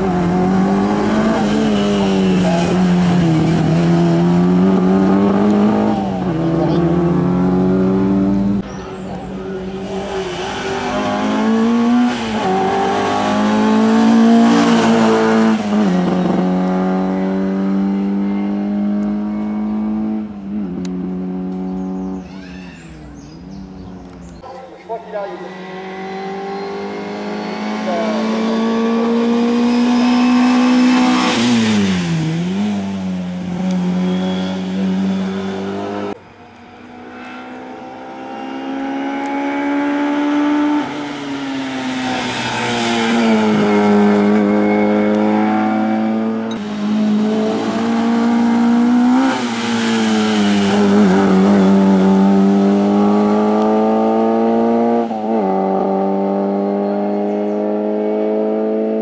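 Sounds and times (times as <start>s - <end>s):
race car engine revving: 0.0s - 22.4s, 23.2s - 59.0s.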